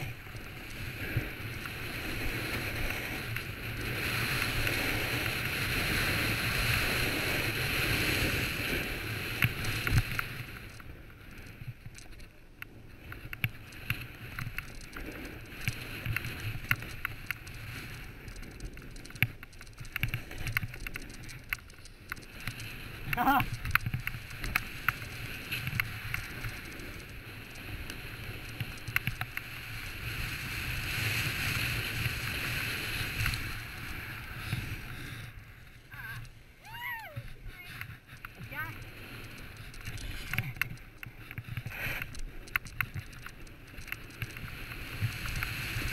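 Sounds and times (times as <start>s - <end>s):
snowboard hissing over snow: 0.0s - 10.6s
wind rushing on microphone: 0.0s - 11.9s
snowboard scraping over snow: 0.0s - 36.6s, 37.2s - 45.9s.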